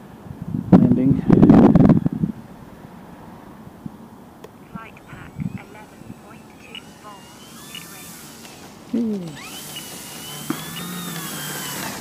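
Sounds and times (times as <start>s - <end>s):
wind buffeting microphone: 0.2s - 2.7s, 5.1s - 6.9s.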